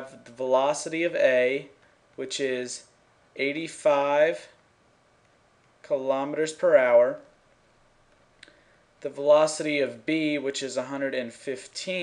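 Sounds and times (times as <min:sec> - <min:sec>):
person speaking: 0:00.0 - 0:04.7, 0:05.7 - 0:07.4, 0:08.3 - 0:12.0.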